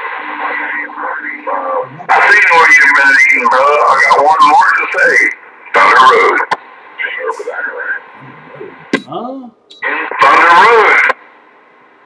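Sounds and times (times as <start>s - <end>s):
faint voice over radio: 0.5s - 6.4s, 7.0s - 11.2s.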